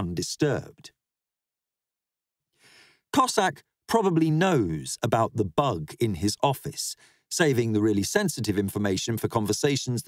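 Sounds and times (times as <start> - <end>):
man reading aloud: 0.0 - 1.0, 3.1 - 10.0
man's soft in-breath: 2.5 - 3.1, 7.0 - 7.3.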